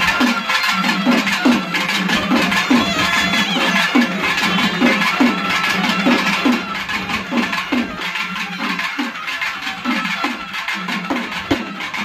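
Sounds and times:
drum strokes dipping in pitch: 0:00.0 - 0:12.0
reed pipes playing melody: 0:00.0 - 0:12.0.

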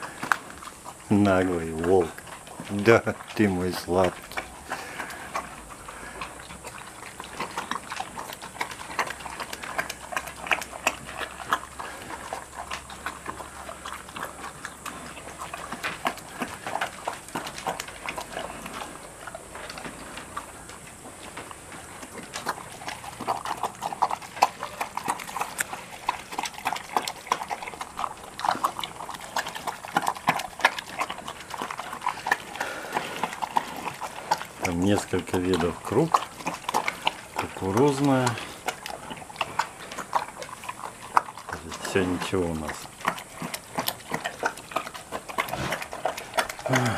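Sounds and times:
bear eating with wet slurping: 0:00.0 - 0:46.9.

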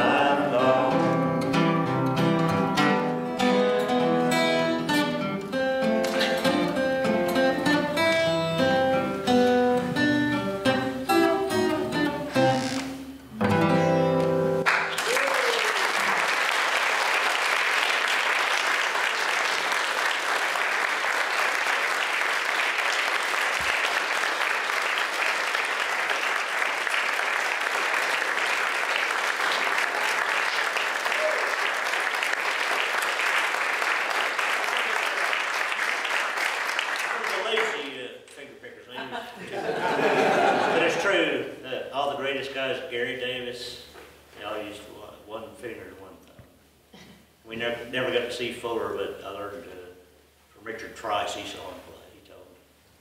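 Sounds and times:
acoustic blues guitar: 0:00.0 - 0:14.7
audience applause: 0:14.6 - 0:38.0.

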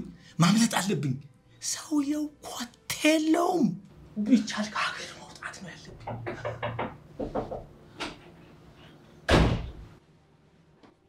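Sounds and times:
door slamming shut: 0:09.3 - 0:09.8.

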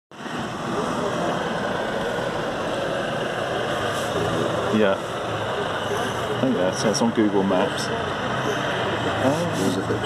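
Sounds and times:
steady background noise: 0:00.1 - 0:10.0
faint voices: 0:00.4 - 0:10.0.

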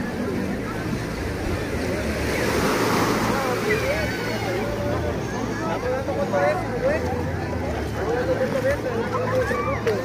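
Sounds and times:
small waves washing onto beach: 0:00.0 - 0:10.0.

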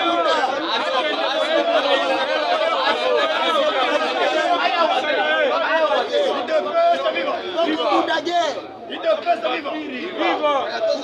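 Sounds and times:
overlapping voices: 0:00.0 - 0:08.1
man talking: 0:00.0 - 0:11.0.

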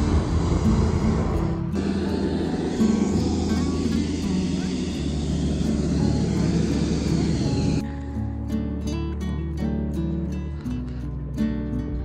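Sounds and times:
propane burner rushing: 0:00.0 - 0:07.9
faint music: 0:00.0 - 0:12.0.

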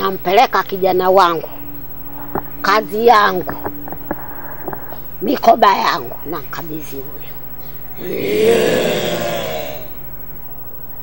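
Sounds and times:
voices crying out together: 0:07.7 - 0:10.0.

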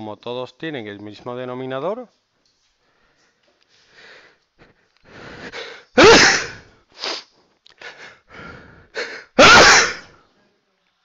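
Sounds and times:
person inhaling: 0:02.8 - 0:06.0, 0:06.6 - 0:09.4
person sneezing: 0:05.5 - 0:08.0, 0:09.0 - 0:10.2.

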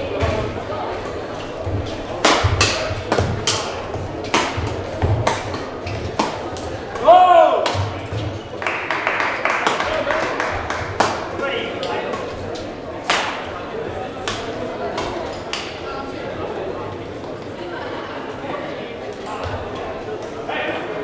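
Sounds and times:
murmur of voices echoing: 0:00.0 - 0:21.0
racket hitting shuttlecock: 0:02.1 - 0:08.4, 0:10.6 - 0:11.3, 0:13.0 - 0:13.5.

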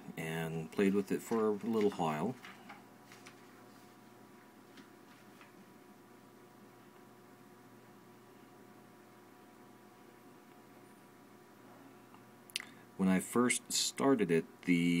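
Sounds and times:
faint steady hum: 0:00.0 - 0:15.0.

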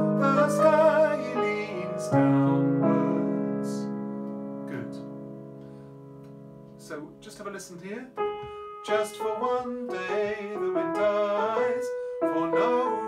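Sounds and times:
man singing: 0:00.0 - 0:03.9, 0:08.8 - 0:13.0
piano chords: 0:00.0 - 0:13.0.

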